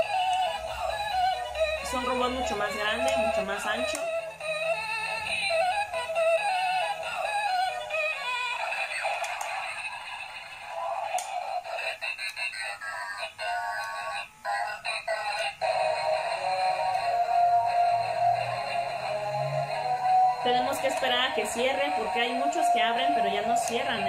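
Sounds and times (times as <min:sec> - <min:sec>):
toy playing tinny electronic song: 0:00.0 - 0:24.0
toy clicks: 0:02.9 - 0:04.1, 0:08.6 - 0:10.0, 0:11.0 - 0:17.3
falling electronic tone: 0:15.6 - 0:24.0.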